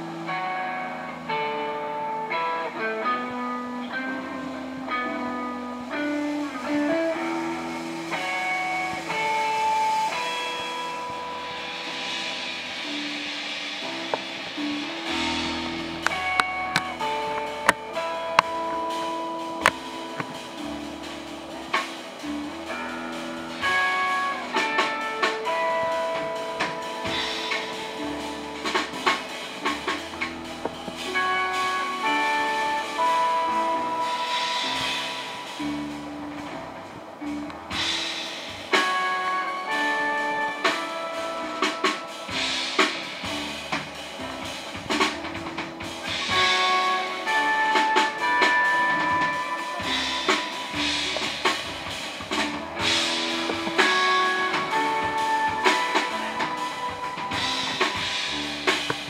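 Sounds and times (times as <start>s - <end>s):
upright bass: 0.0s - 10.4s, 11.0s - 41.7s, 42.3s - 59.0s
cymbals: 0.0s - 59.0s
guitar slow melody: 0.0s - 59.0s
live band playing slowly: 0.0s - 59.0s
piano: 0.0s - 59.0s
drum-stick clicks: 16.0s - 18.6s.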